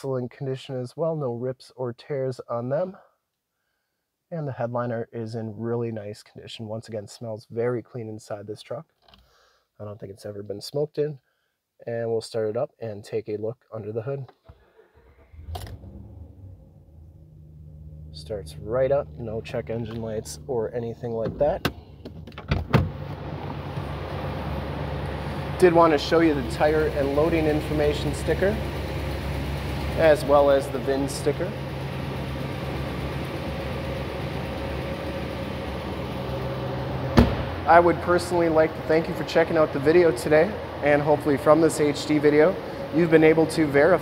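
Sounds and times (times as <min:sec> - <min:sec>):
engine settling to idle: 0:14.8 - 0:20.8, 0:22.9 - 0:44.0.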